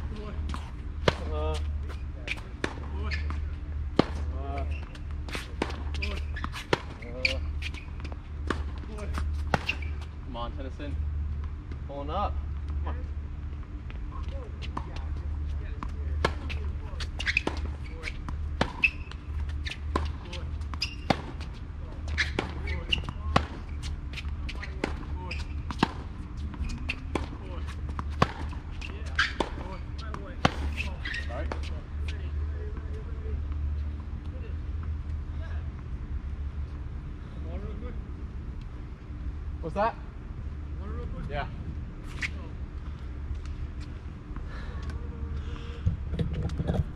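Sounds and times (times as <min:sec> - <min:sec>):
steady low hum: 0:00.0 - 0:46.9.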